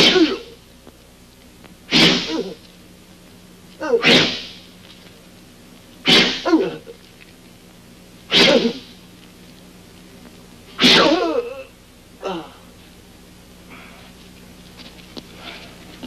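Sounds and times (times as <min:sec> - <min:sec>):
sharp blows striking a man: 0:00.0 - 0:00.5, 0:01.9 - 0:02.5, 0:04.0 - 0:04.6, 0:06.1 - 0:06.6, 0:08.3 - 0:08.8, 0:10.8 - 0:11.3
man crying out in pain: 0:12.2 - 0:12.6.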